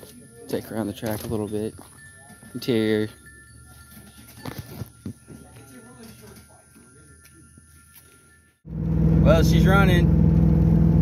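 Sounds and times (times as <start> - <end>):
faint distant voices: 0.0 - 8.5
car engine running with a miss: 8.7 - 11.0.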